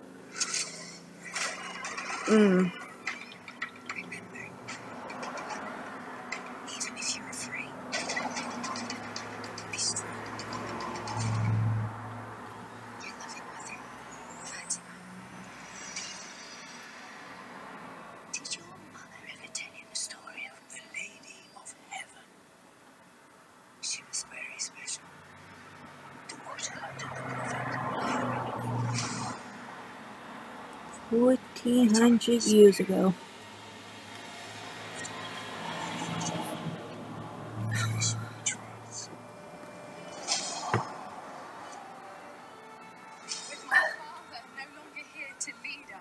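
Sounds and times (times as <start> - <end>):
person whispering: 6.7 - 7.8, 18.3 - 22.2, 23.8 - 25.0, 26.3 - 29.4.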